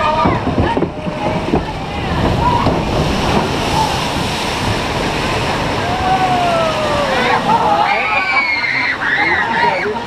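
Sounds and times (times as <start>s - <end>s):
voices: 0.0s - 10.0s
water rushing and spraying: 0.0s - 10.0s.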